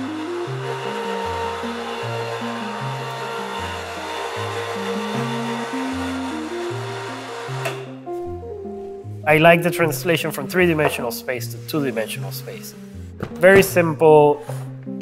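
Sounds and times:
electric hoist motor whirring: 0.0 - 8.0.

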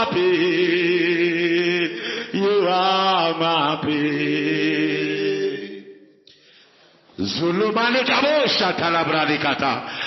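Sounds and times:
wordless vocal chanting: 0.0 - 6.2.

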